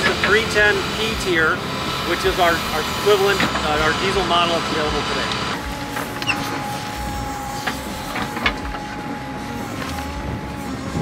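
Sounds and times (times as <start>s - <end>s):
backhoe engine whining: 0.0s - 11.0s.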